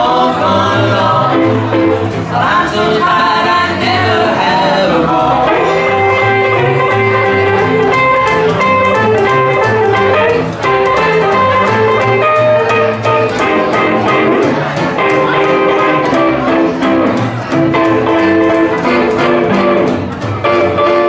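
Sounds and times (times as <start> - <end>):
acoustic swing band playing: 0.0 - 21.0
strummed guitars chop rhythm: 0.0 - 21.0
upright double bass: 0.0 - 21.0.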